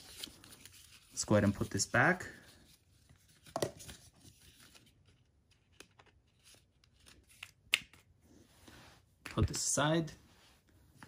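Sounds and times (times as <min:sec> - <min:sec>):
card paper rustling and tapping: 0:03.1 - 0:08.0.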